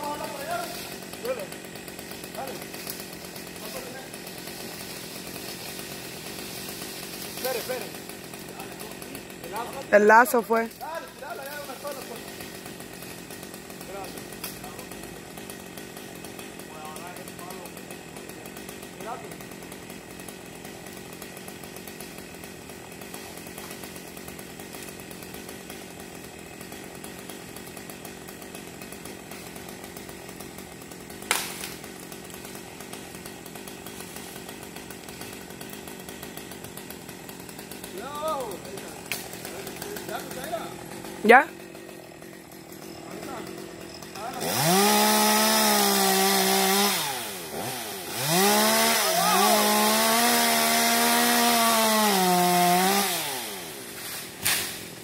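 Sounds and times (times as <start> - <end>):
chainsaw running: 0.0 - 55.0
people calling: 48.8 - 49.9.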